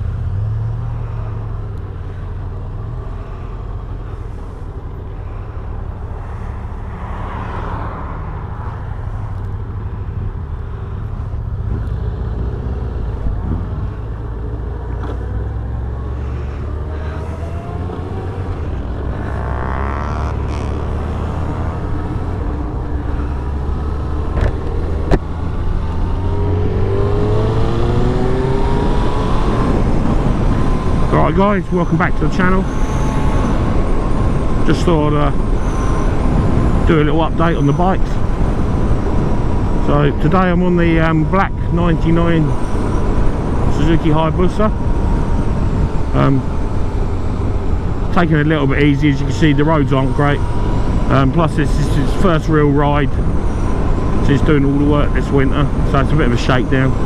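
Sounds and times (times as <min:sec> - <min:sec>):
motorcycle engine: 0:00.0 - 0:57.0.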